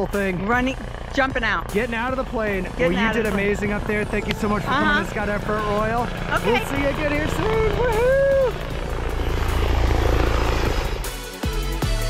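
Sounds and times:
low drone: 0.0s - 12.0s
rush of noise: 5.5s - 11.1s
woman cheering: 7.6s - 8.6s.

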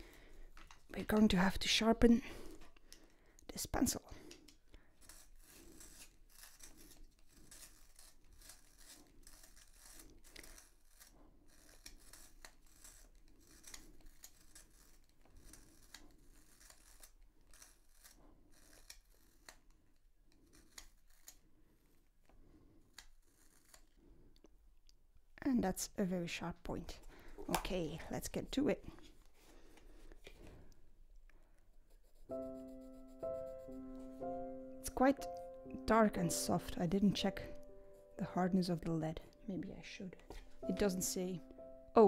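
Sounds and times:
small clicks of turning pencil: 0.5s - 1.3s, 2.6s - 3.5s, 4.2s - 21.4s, 22.2s - 24.5s
pencil sharpener grinding: 4.2s - 22.0s, 22.6s - 24.1s, 31.9s - 41.7s.

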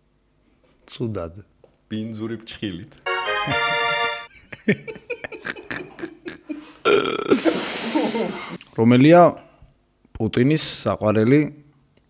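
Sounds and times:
men laughing: 3.2s - 8.6s.

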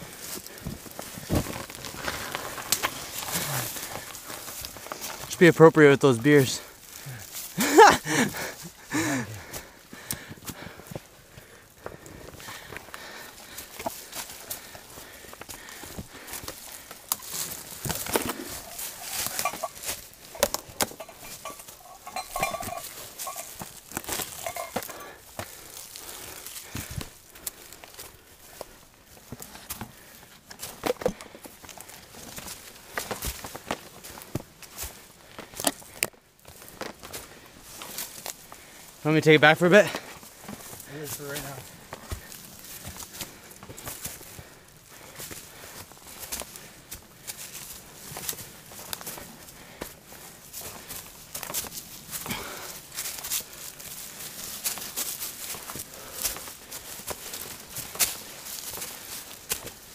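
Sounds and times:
footsteps on forest trail: 0.0s - 59.9s
brush rustling and snapping: 15.5s - 24.6s.

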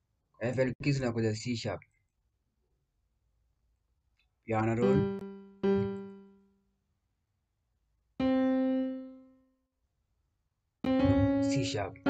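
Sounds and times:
electric piano notes: 4.8s - 6.2s, 8.2s - 9.2s, 10.8s - 12.0s.

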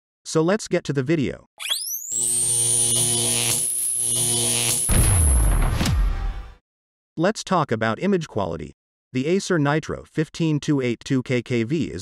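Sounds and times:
thin high whine: 1.6s - 5.0s.

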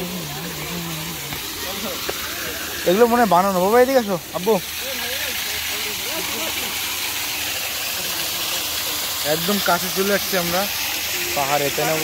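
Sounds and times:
waterfall pouring into pond: 0.0s - 12.0s.

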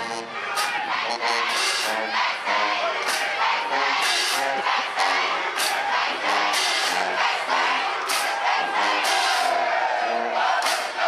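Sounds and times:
band chanting and shouting: 0.0s - 11.0s
crowd noise: 0.0s - 11.0s.

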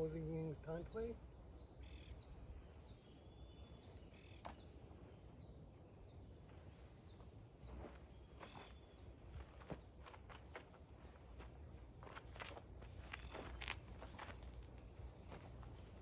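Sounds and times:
bird chirps: 0.6s - 9.9s, 12.9s - 16.0s
footsteps and shoe scuffs on dirt: 5.8s - 16.0s.

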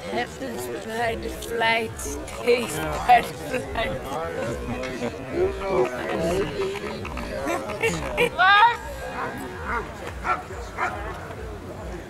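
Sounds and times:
dog barking: 9.7s - 11.0s.

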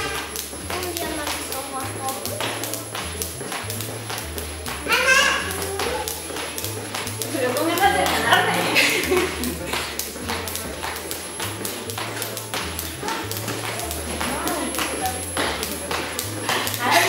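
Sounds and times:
person's voice: 0.0s - 3.8s, 4.8s - 17.0s
background music with bass line: 0.0s - 17.0s
jump ropes slapping tile floor: 0.0s - 17.0s.

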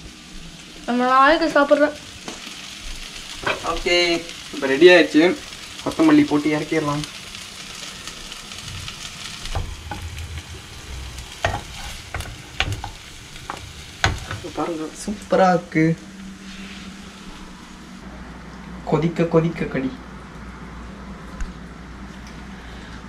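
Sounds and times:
vegetable slices sizzling in a pan: 0.0s - 18.0s
wooden spatula scraping a pan: 9.3s - 14.8s.

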